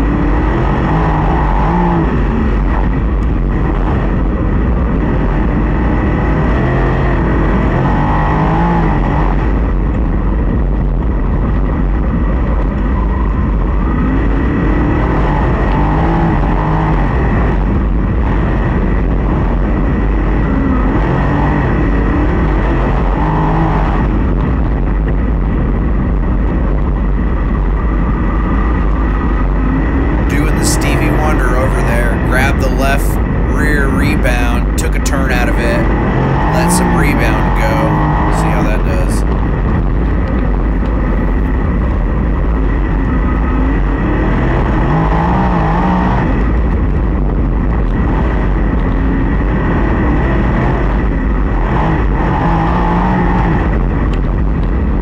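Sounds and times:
race car engine revving: 0:00.0 - 0:10.6, 0:12.8 - 0:24.6, 0:27.2 - 0:47.1, 0:47.9 - 0:54.2
wind rumble on microphone: 0:00.0 - 0:33.5, 0:37.5 - 0:55.0.

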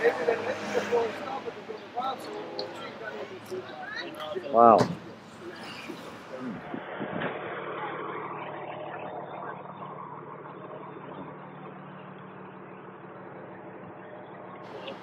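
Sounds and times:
car engine humming: 0:00.0 - 0:15.0.

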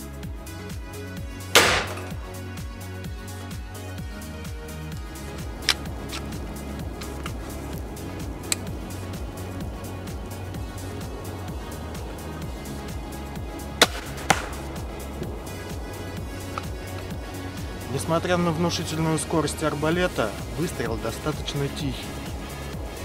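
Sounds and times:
background music with steady beat: 0:00.0 - 0:23.0
bolt striking target: 0:01.6 - 0:02.4, 0:13.8 - 0:14.8
crossbow firing crack: 0:01.6 - 0:02.4, 0:13.8 - 0:15.0.

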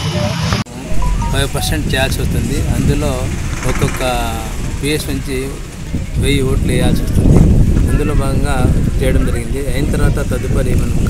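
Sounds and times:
person talking: 0:00.9 - 0:02.4.

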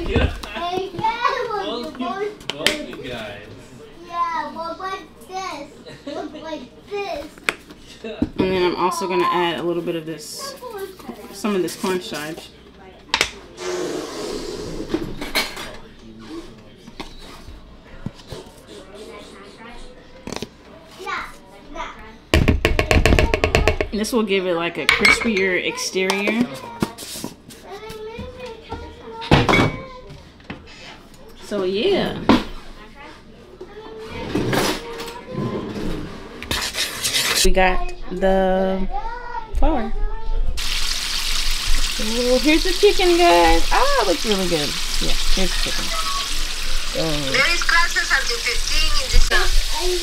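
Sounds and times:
knock: 0:22.3 - 0:23.9.

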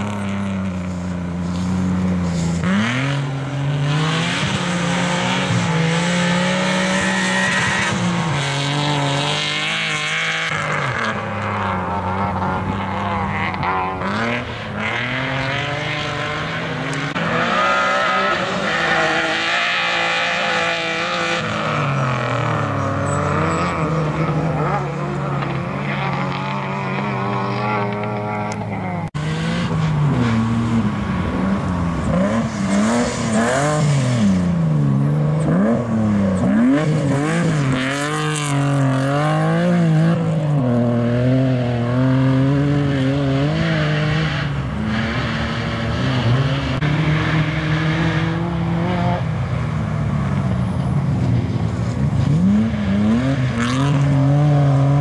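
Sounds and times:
rally car engine revving hard: 0:01.5 - 0:49.5, 0:52.1 - 0:55.0.

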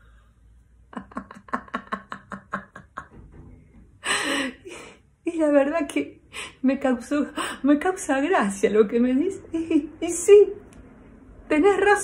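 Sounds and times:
woman laughing: 0:01.0 - 0:03.2
breathy gasp: 0:04.0 - 0:05.0.

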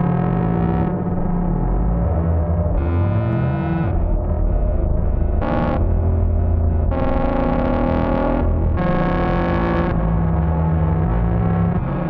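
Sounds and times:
low synthesizer bass drone: 0:00.0 - 0:12.0.

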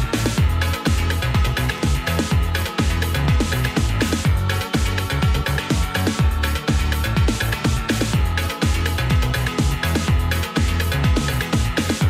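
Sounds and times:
electronic dance music: 0:00.0 - 0:12.0
fast kick-drum beat: 0:00.0 - 0:12.0.

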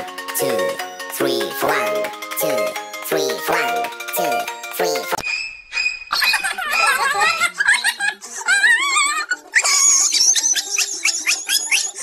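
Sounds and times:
music with stepping tune: 0:00.0 - 0:05.2
wobbling laughter-like voice sounds: 0:06.1 - 0:12.0.

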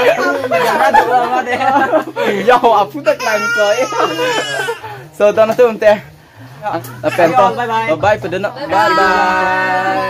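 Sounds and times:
small child crying: 0:03.1 - 0:04.8.

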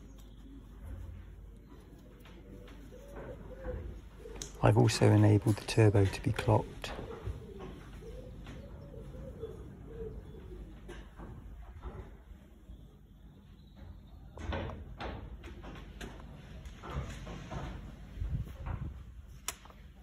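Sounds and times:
pigeon cooing: 0:00.0 - 0:12.6.

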